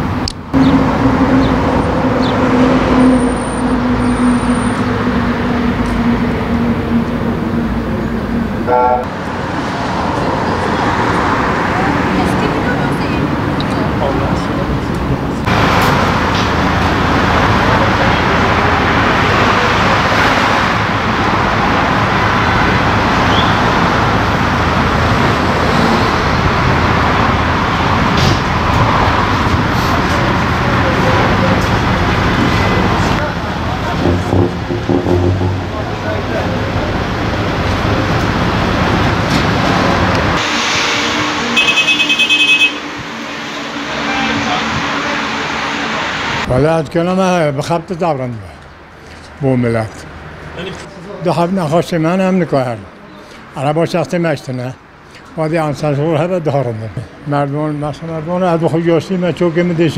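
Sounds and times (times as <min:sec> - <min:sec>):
road traffic passing: 0:00.0 - 0:59.9
voices: 0:00.6 - 0:25.4, 0:27.6 - 0:40.4, 0:42.5 - 0:59.9.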